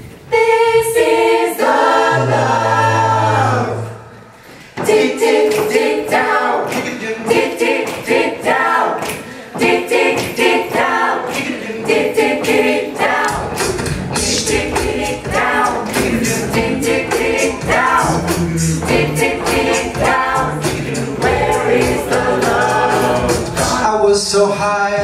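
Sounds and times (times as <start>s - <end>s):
a cappella group singing: 0.2s - 25.0s
beatboxed vocal percussion: 11.3s - 25.0s.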